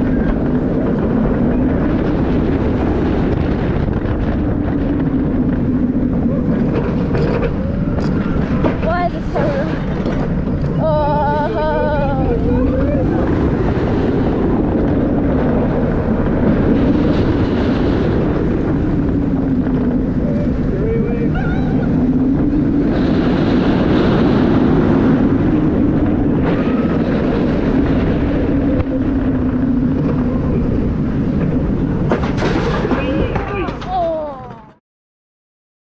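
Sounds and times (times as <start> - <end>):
roller coaster rumbling on track: 0.0 - 34.8
wind buffeting microphone: 0.0 - 34.8.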